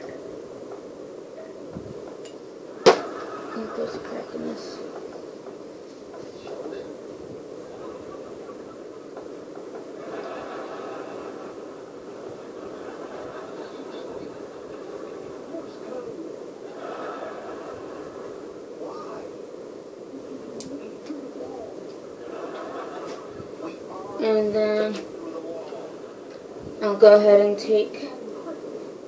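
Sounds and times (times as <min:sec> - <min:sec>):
faint muffled voices: 0:00.0 - 0:29.0
steady low machine hum: 0:00.0 - 0:29.0.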